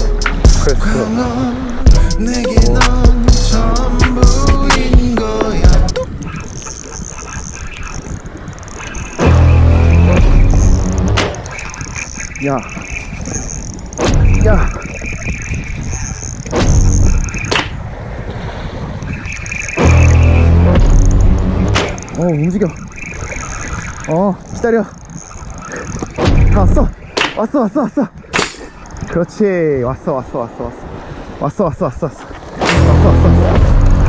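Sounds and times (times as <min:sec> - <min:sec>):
background music: 0:00.0 - 0:06.1, 0:09.2 - 0:11.3, 0:19.8 - 0:21.9, 0:32.7 - 0:34.0
wind buffeting microphone: 0:04.1 - 0:30.1.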